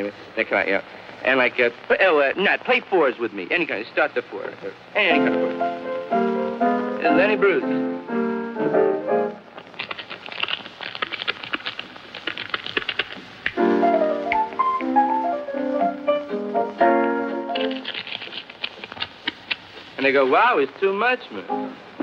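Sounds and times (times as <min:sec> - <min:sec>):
jazz chords: 0:05.0 - 0:09.6, 0:13.3 - 0:17.9, 0:21.4 - 0:22.0.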